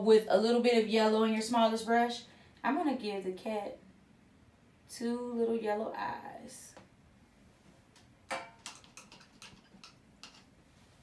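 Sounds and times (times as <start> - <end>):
light clicks and taps: 8.0 - 10.5.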